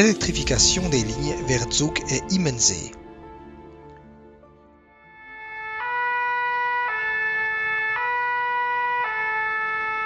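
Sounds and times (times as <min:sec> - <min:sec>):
two-tone emergency siren: 0:05.0 - 0:10.0.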